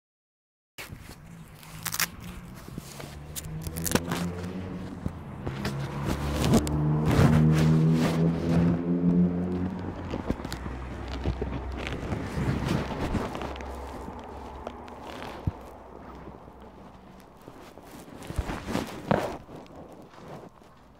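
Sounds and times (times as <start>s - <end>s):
footsteps: 0.8s - 20.9s
low motor hum: 1.2s - 20.1s.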